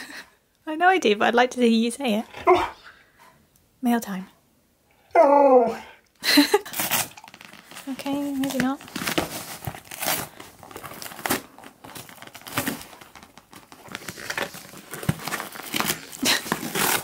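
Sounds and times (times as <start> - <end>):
dog ripping cardboard: 6.6 - 17.0.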